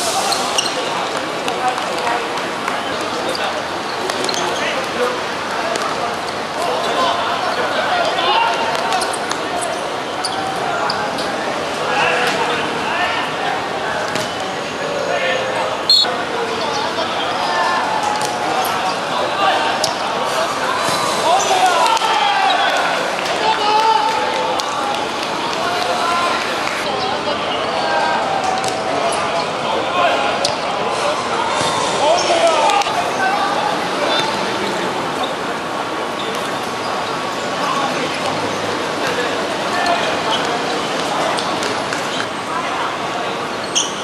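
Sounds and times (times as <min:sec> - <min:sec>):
players calling out: 0:00.0 - 0:44.0.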